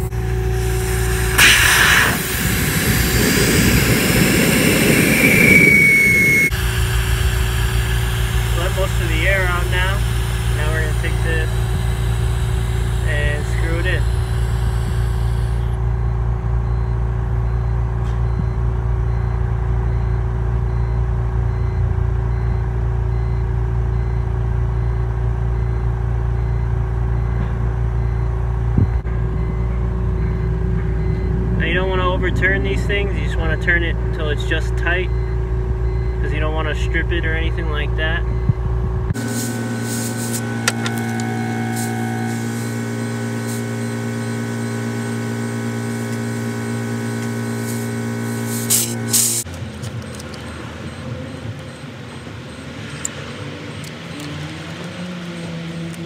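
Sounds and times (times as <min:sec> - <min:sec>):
steady low rumble: 0:00.0 - 0:44.0
air hissing from tyre valve: 0:00.4 - 0:15.8, 0:39.2 - 0:43.9, 0:47.6 - 0:49.4
thin whistle: 0:03.1 - 0:06.9.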